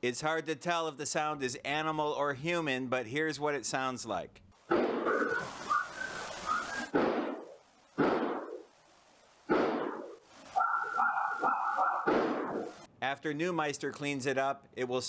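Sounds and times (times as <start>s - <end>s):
background hiss: 0.0s - 15.0s
gunshots: 4.7s - 5.3s, 6.9s - 8.7s, 9.5s - 10.2s, 12.0s - 12.8s.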